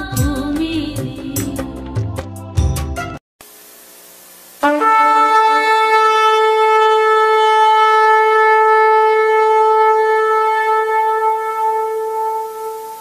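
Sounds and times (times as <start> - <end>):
shofar blast: 4.6 - 13.0.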